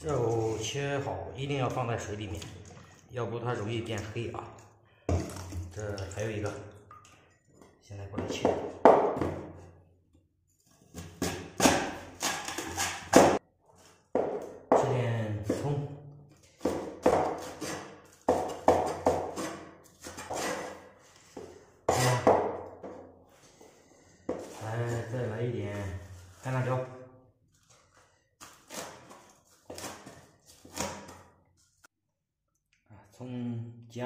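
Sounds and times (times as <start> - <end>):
man talking: 0.0 - 4.6, 5.7 - 6.7, 7.8 - 8.6, 14.7 - 16.1, 24.6 - 27.0
cleaver chopping on wooden board: 11.0 - 13.4, 16.6 - 19.7.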